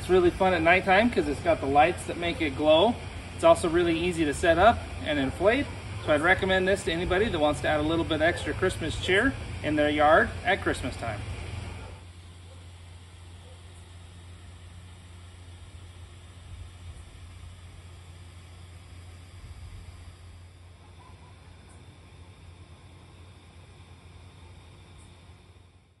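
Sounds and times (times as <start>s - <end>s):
electric blower fan humming: 0.0s - 26.0s.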